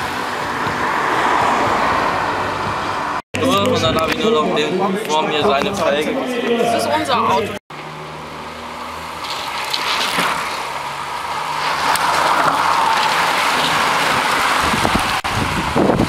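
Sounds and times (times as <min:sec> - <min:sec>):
hiss of tyres and wind: 0:08.0 - 0:16.0
bicycles sweeping past: 0:08.9 - 0:16.0.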